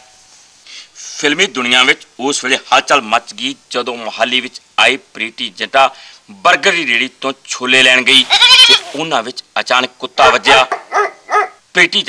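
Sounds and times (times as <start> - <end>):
goat-like bleating: 8.2 - 9.0.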